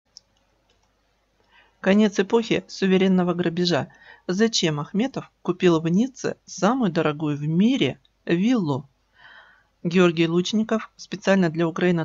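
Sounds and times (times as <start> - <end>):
person speaking: 1.8 - 9.0, 9.8 - 12.0.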